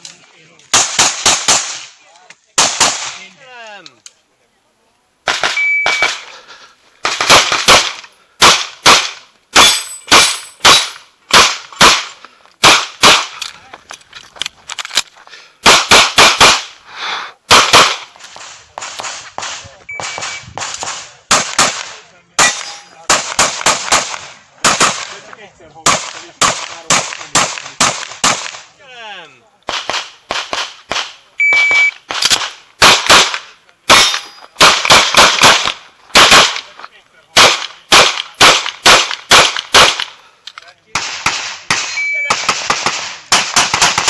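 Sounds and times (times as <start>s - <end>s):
rapid pistol fire: 0.7s - 1.9s, 2.6s - 3.2s, 7.0s - 13.3s, 15.6s - 16.8s, 17.5s - 25.2s, 25.8s - 28.7s, 32.1s - 36.7s, 37.4s - 40.2s, 41.0s - 44.0s.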